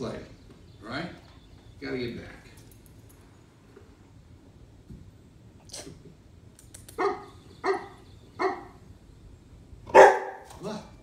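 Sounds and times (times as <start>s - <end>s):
puppy barking: 7.0s - 8.8s, 9.9s - 10.5s.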